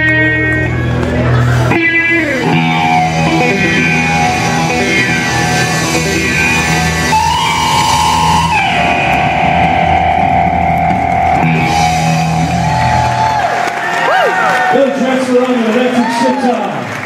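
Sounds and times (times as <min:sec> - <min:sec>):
sustained electric guitar note: 0:00.0 - 0:13.2
bass and drums: 0:00.0 - 0:14.7
audience whooping: 0:04.9 - 0:17.0.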